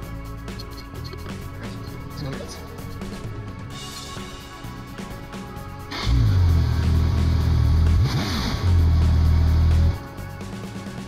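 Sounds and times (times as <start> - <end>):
background music: 0.0 - 11.0
car engine starting and running: 5.8 - 10.0.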